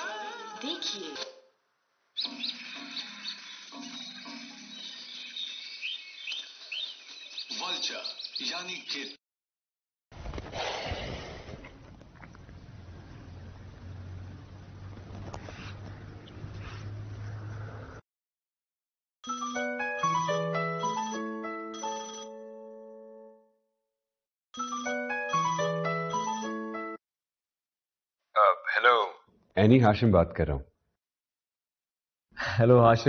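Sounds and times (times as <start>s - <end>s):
small birds chirping: 2.2s - 9.2s, 12.1s - 17.6s
phone ringtone bell-like melody: 19.2s - 23.5s, 24.6s - 27.0s.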